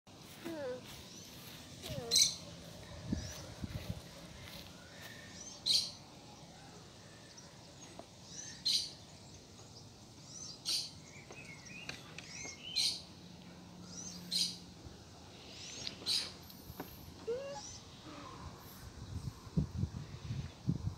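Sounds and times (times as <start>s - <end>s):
small birds chirping: 0.1s - 20.8s.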